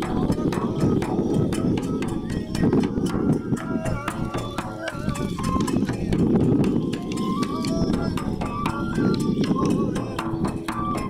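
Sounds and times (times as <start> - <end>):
drum beating: 0.0 - 11.0
flute notes: 0.0 - 11.0.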